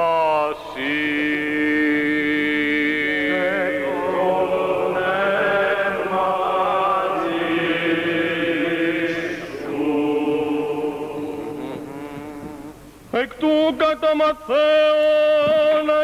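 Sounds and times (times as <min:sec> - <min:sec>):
male voices chanting: 0:00.0 - 0:12.7
held drone note: 0:08.3 - 0:12.7.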